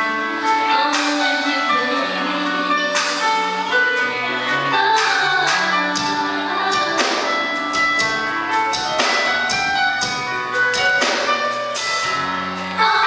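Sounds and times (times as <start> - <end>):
guitar chords: 0.0 - 13.0
keyboard chords: 0.0 - 13.0
drum kit beat: 2.7 - 13.0.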